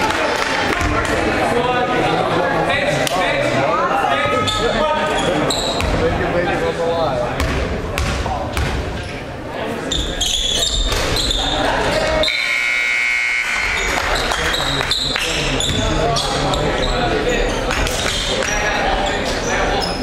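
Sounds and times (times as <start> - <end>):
murmur of voices: 0.0 - 20.0
sneakers squeaking on court: 4.3 - 6.0, 9.9 - 12.4, 13.8 - 20.0
basketball bouncing: 7.4 - 8.9.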